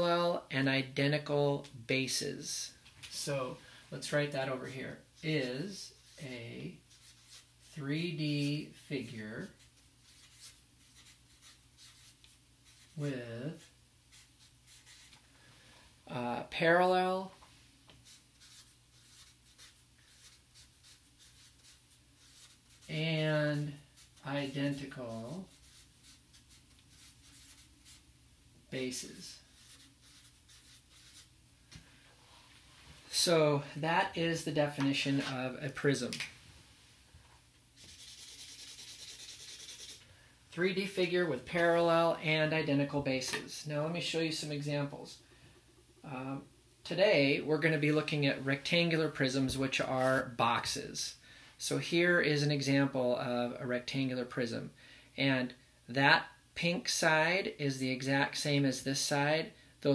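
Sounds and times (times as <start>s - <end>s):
marker scratching on paper: 5.9s - 7.8s, 8.4s - 15.2s, 18.0s - 28.0s, 29.1s - 31.3s, 37.8s - 40.0s.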